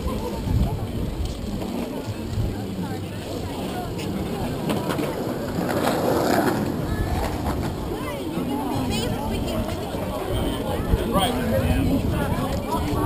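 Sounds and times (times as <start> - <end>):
bicycle tyres rumbling on concrete: 0.0 - 13.0
voices of passersby: 0.0 - 13.0
wind on microphone: 0.0 - 13.0.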